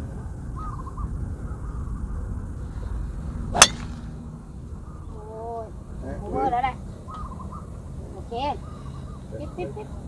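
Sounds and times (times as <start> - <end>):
low steady rumble: 0.0 - 9.2
golf club striking ball: 3.5 - 4.2.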